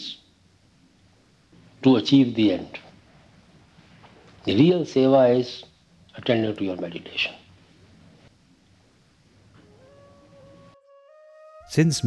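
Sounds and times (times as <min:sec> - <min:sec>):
faint hiss: 0:00.0 - 0:10.8
background music: 0:09.6 - 0:12.0
soft flute notes: 0:09.6 - 0:12.0.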